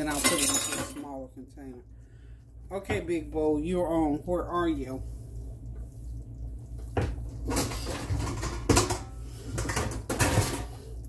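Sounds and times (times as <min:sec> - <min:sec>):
mixing bowls clattering: 0:00.0 - 0:01.2, 0:06.8 - 0:11.0.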